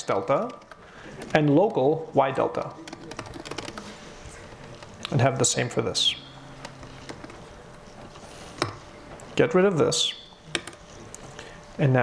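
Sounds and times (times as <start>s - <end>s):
typing on computer keyboard: 0.1s - 1.8s, 2.4s - 3.9s.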